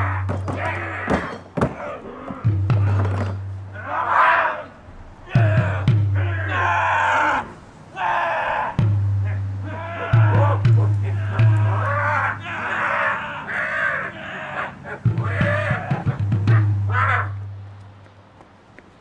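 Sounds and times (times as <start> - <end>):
harsh raspy cries: 0.0 - 17.6.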